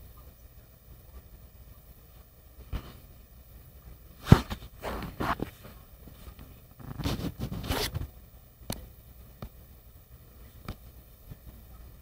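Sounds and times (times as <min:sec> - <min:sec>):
rasping zipper-like scrapes: 0:06.8 - 0:08.0.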